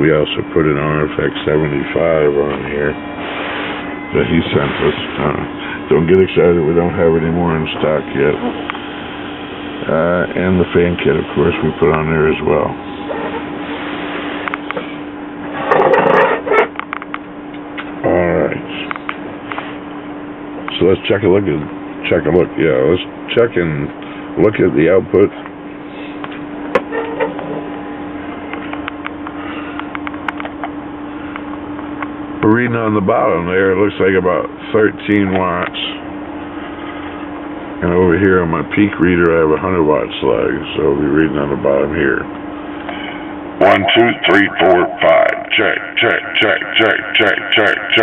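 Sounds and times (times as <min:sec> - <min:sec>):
man talking: 0:00.0 - 0:03.0, 0:04.1 - 0:08.5, 0:09.8 - 0:12.8, 0:18.0 - 0:18.9, 0:20.7 - 0:25.4, 0:32.4 - 0:36.0, 0:37.8 - 0:42.3, 0:43.6 - 0:48.0
steady low hum and hiss: 0:00.0 - 0:48.0.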